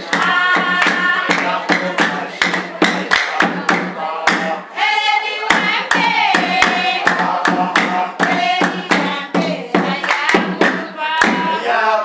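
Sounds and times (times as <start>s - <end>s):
rhythmic handclapping: 0.0s - 11.7s
voices singing a dance song: 0.0s - 12.0s.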